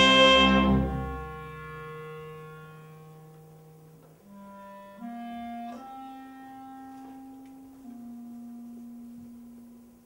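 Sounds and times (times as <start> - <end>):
clarinet holding low note: 0.0 - 10.0.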